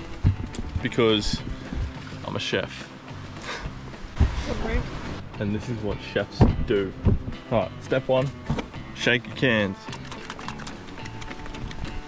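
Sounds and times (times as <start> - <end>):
background music: 0.0 - 12.0
cans shaken by hand: 9.8 - 12.0
contents knocking inside cans: 10.0 - 11.8.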